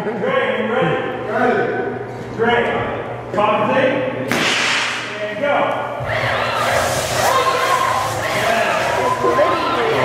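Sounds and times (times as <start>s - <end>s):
confetti cannon air blast: 4.3s - 5.1s
people shouting and whooping: 6.0s - 10.0s.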